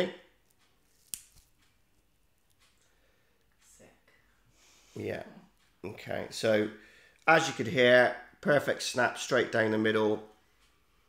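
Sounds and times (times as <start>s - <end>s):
plant stem snapping: 0.9s - 1.6s.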